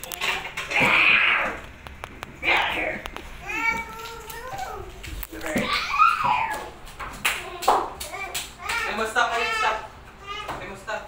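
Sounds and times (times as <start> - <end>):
child's high-pitched cry: 5.6 - 6.8.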